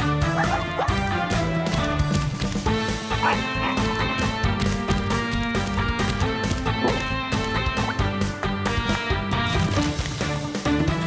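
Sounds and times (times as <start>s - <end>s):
background music with beat: 0.0s - 11.0s
cartoon puppy yipping barks: 0.3s - 1.4s, 3.2s - 3.8s.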